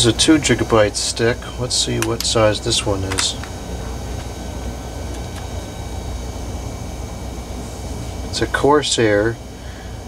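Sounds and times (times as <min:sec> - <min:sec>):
faint steady hum: 0:00.0 - 0:10.0
low background rumble: 0:00.0 - 0:10.0.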